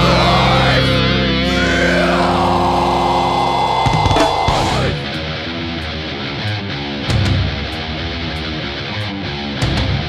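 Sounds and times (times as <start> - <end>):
distorted electric guitar chord: 0.0 - 6.3
sharp drum hits: 3.8 - 5.0.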